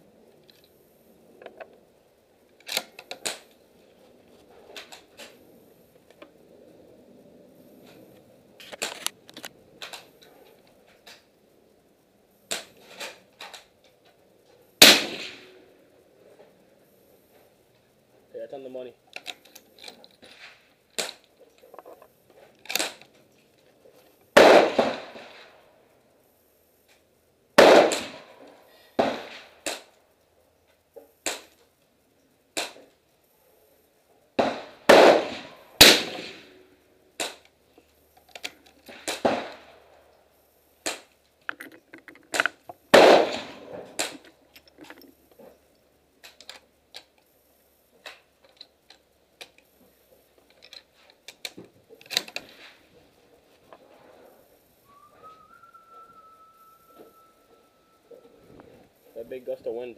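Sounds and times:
gunshots with echo: 24.4s - 25.3s, 27.6s - 28.2s, 34.4s - 36.5s, 42.9s - 44.2s.

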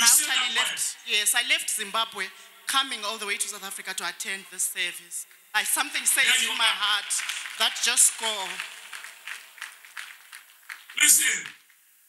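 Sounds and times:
congregation clapping: 0.0s - 0.8s, 5.7s - 11.8s.

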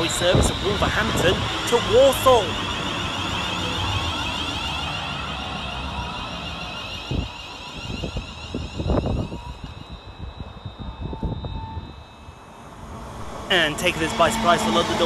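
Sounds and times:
wind buffeting microphone: 0.0s - 2.8s, 6.8s - 15.0s
electric train pulling away: 0.0s - 15.0s
high motor whine: 0.0s - 15.0s.

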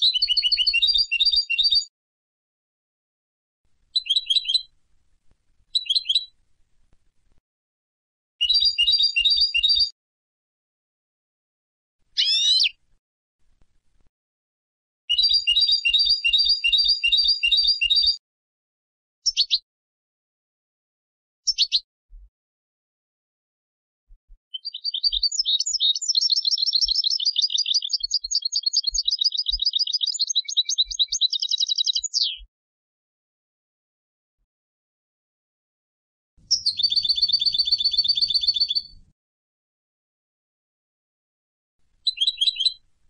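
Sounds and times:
goldfinch twittering song: 0.0s - 1.8s, 4.0s - 4.7s, 5.7s - 6.3s, 8.4s - 9.9s, 12.2s - 12.8s, 15.1s - 18.2s, 21.5s - 21.8s, 24.5s - 32.5s, 36.5s - 39.0s, 42.0s - 42.8s
bird singing fast trill: 0.0s - 1.9s, 4.0s - 4.7s, 5.7s - 6.3s, 8.4s - 9.9s, 12.2s - 12.8s, 15.1s - 18.2s, 19.3s - 19.6s, 21.5s - 21.8s, 24.5s - 32.5s, 36.5s - 39.0s, 42.0s - 42.8s.

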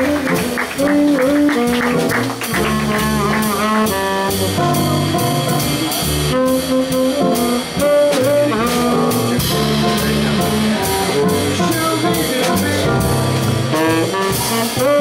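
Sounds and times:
drum kit with cymbal strokes: 0.0s - 15.0s
saxophone melody: 0.0s - 15.0s
walking upright bass: 0.0s - 15.0s.

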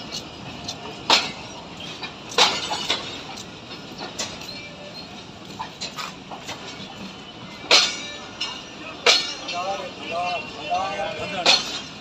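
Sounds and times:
steady background noise: 0.0s - 12.0s
metallic clanks and clicks: 0.1s - 7.1s, 11.3s - 12.0s.

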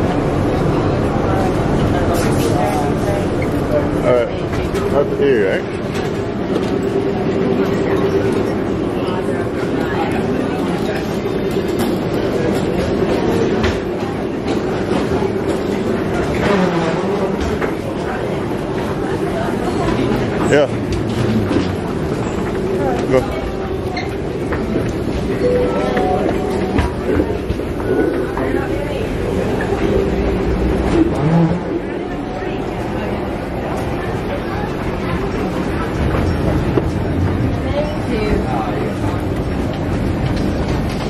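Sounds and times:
low hum of hall: 0.0s - 41.0s
murmur of voices: 0.0s - 41.0s
escalator rumbling: 10.8s - 41.0s.

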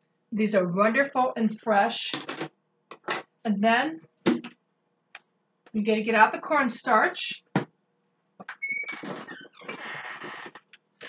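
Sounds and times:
high door squeak: 8.5s - 10.5s.

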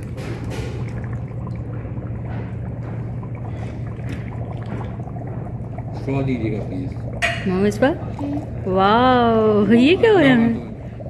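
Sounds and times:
sauce trickling: 0.0s - 11.0s.

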